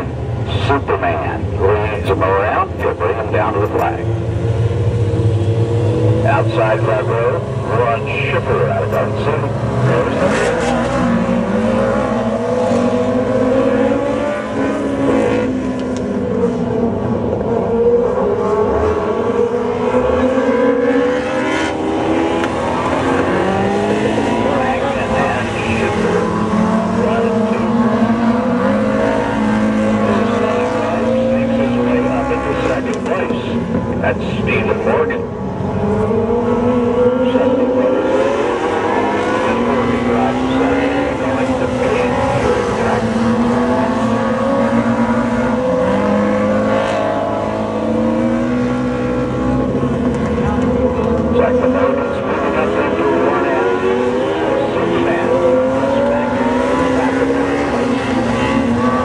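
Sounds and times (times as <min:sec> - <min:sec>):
high-revving race car engines: 0:00.0 - 0:59.0.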